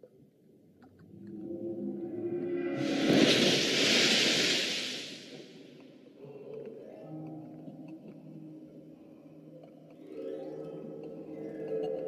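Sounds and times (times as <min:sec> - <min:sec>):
low musical drone: 0:01.1 - 0:04.7
rushing whoosh: 0:02.0 - 0:05.8.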